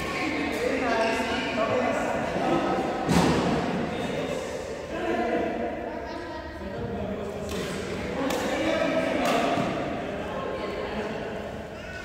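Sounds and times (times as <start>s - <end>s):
background chatter: 0.0s - 12.0s.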